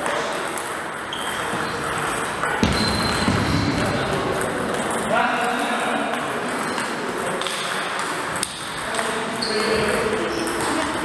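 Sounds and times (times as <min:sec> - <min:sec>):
sports hall hum: 0:00.0 - 0:11.0
table tennis ball clicking: 0:06.1 - 0:11.0.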